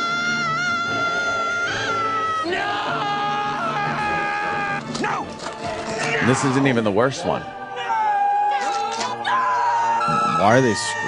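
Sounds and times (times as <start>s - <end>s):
people screaming no: 0.0s - 5.2s, 7.8s - 11.0s
background music: 0.0s - 11.0s.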